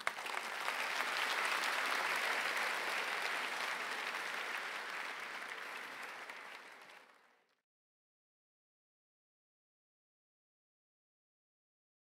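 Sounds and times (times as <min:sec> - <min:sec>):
audience applauding: 0:00.0 - 0:07.6.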